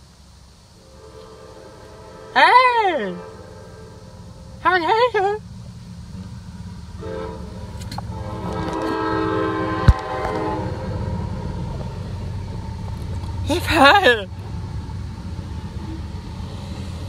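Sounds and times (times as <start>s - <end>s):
train rumbling past: 0.0s - 17.0s
locomotive air horn blast: 0.8s - 5.2s, 6.9s - 11.7s.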